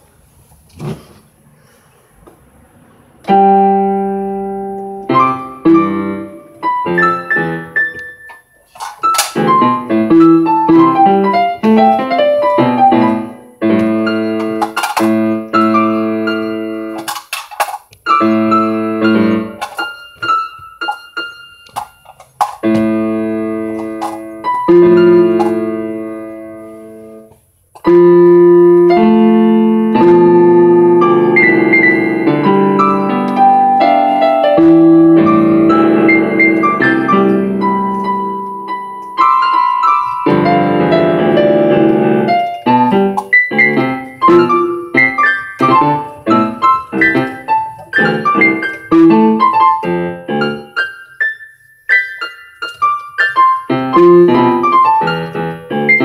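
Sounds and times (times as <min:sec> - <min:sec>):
solo piano: 0:02.4 - 0:56.0.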